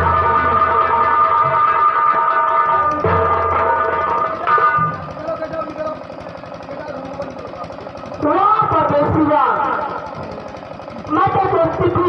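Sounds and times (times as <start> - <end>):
held musical note: 0.0 - 6.6
fast low pulsing: 0.0 - 10.3.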